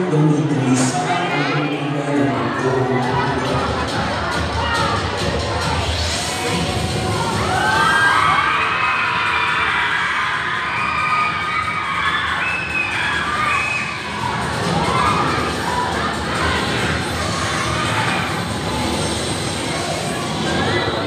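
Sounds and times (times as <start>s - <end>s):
children shouting and cheering: 0.0s - 21.0s
music: 0.0s - 21.0s.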